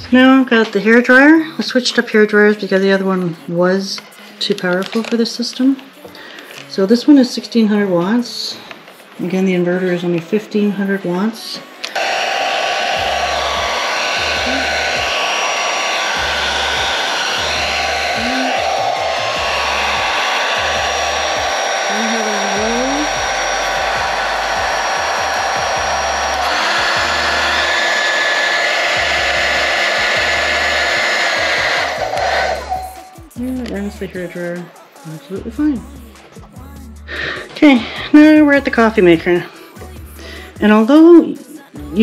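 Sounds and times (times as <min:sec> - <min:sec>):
hair dryer running: 0:11.8 - 0:34.4.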